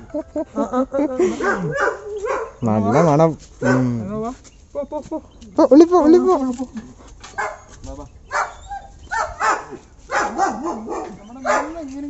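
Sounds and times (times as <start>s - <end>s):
dog barking: 1.4s - 4.0s, 7.4s - 7.7s, 8.3s - 11.9s.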